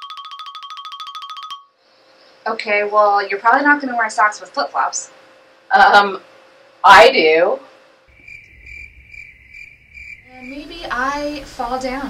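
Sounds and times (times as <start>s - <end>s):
crickets chirping: 8.1s - 11.8s.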